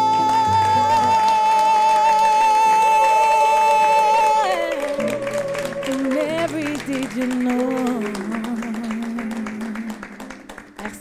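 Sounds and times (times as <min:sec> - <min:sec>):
woman singing a long high note: 0:00.0 - 0:10.1
acoustic guitar chords: 0:00.0 - 0:11.0.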